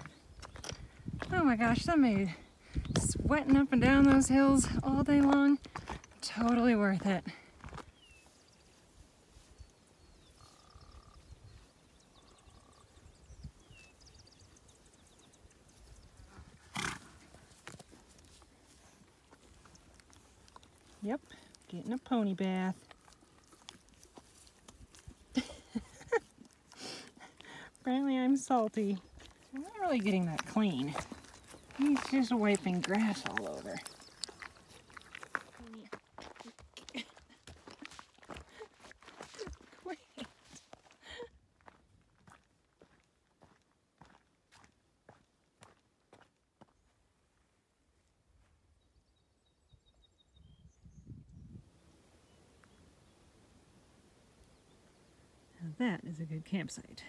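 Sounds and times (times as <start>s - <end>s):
pony snorting: 16.3s - 17.5s
pony lips and tongue smacking: 17.5s - 21.7s, 22.7s - 27.8s, 28.8s - 40.9s.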